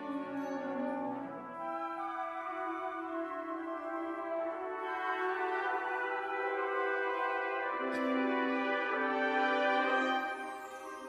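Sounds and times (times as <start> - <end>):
wind ensemble playing chords: 0.0 - 11.0.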